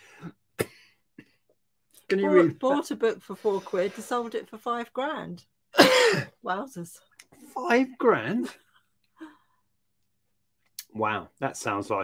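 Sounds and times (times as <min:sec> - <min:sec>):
man coughing: 0:05.8 - 0:06.3.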